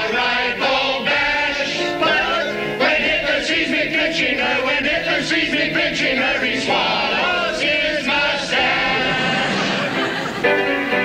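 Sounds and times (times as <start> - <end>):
crowd singing together: 0.0 - 11.0
piano accompaniment: 0.0 - 11.0.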